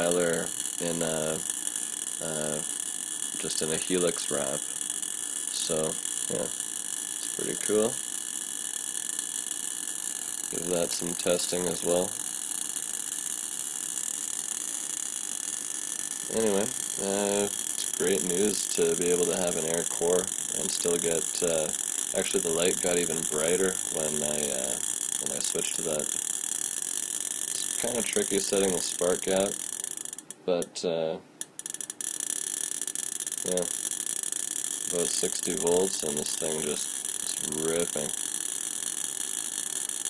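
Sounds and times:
spark gap crackling buzz: 0.0s - 30.5s, 31.4s - 40.0s.

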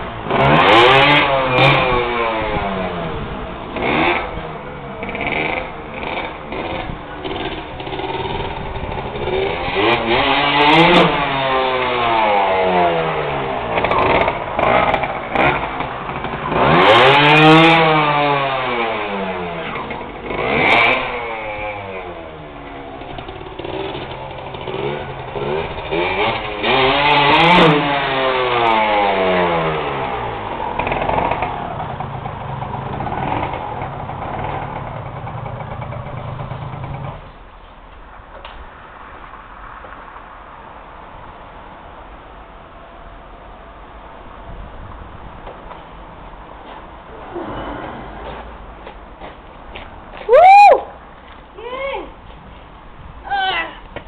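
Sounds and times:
motorcycle engine revving: 0.0s - 37.5s.

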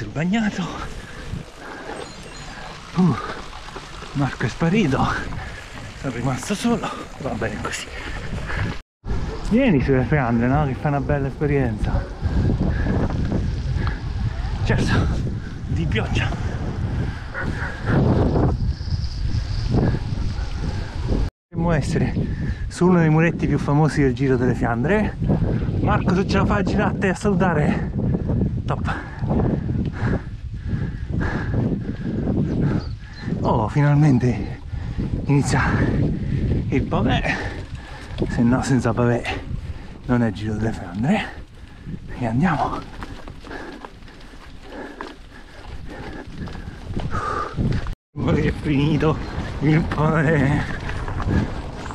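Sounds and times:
bicycle rattling over cobblestones: 0.0s - 8.8s, 37.3s - 51.9s
wind buffeting microphone: 0.0s - 51.9s.

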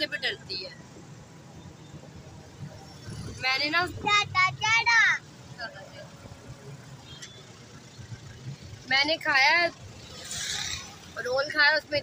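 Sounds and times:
auto-rickshaw engine rumble: 0.0s - 12.0s
road noise: 0.0s - 12.0s.

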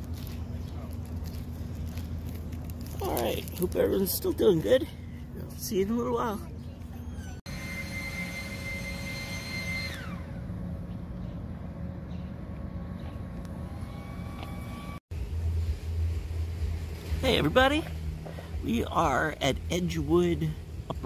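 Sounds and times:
steady low rumble: 0.0s - 7.4s, 10.3s - 21.0s
high engine whine passing: 0.0s - 21.0s
street background noise: 0.0s - 21.0s.

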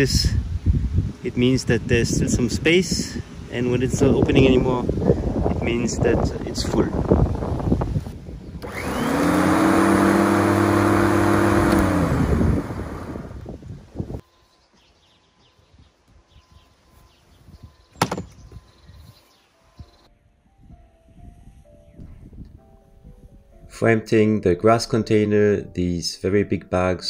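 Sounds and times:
electric lawn mower motor: 8.6s - 13.6s
sharp knock: 18.0s - 18.4s.

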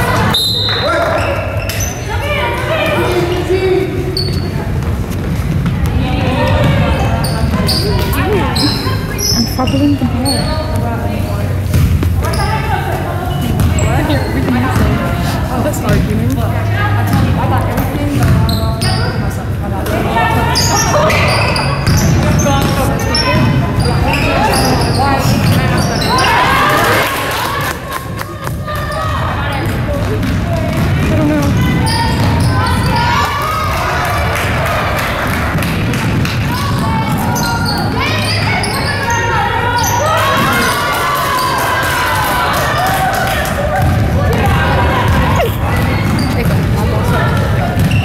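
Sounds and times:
players calling out: 5.7s - 48.0s.

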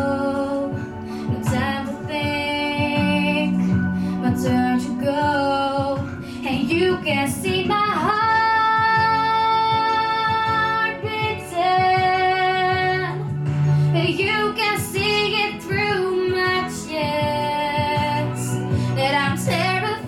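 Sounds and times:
girl singing pop song: 0.0s - 20.0s.

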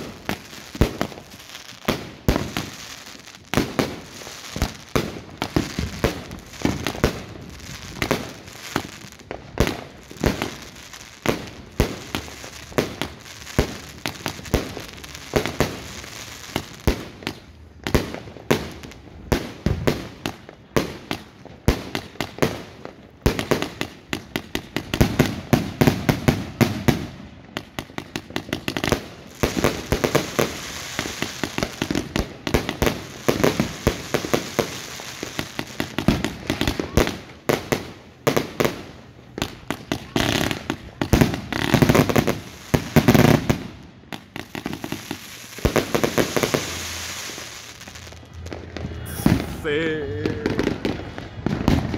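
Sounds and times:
crackling of bursting fireworks: 0.0s - 51.9s.

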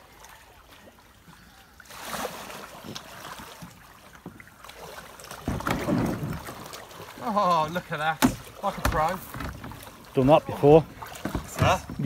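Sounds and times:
paddle splashes and drips: 0.0s - 12.0s
kayak hull scraping on rocks: 5.4s - 6.8s, 7.8s - 12.0s.

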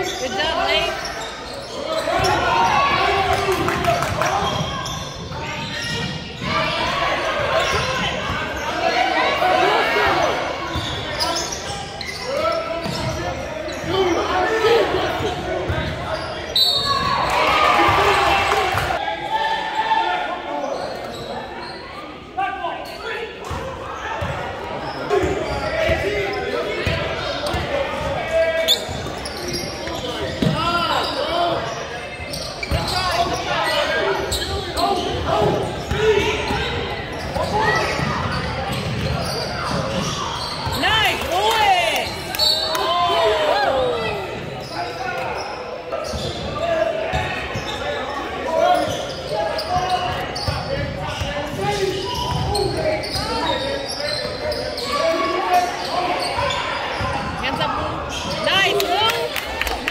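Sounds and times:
crowd chatter and shouts: 0.0s - 59.9s.

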